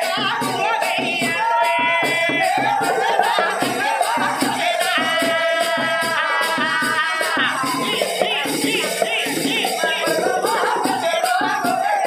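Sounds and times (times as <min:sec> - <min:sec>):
percussion beats: 0:00.0 - 0:12.0
person singing folk song: 0:00.0 - 0:12.0.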